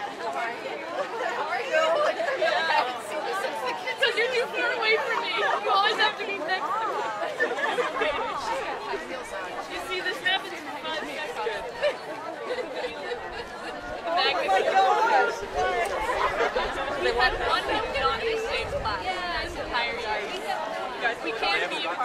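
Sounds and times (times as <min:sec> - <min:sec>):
young voices chattering: 0:00.0 - 0:22.0
bursts of laughter: 0:06.9 - 0:08.8.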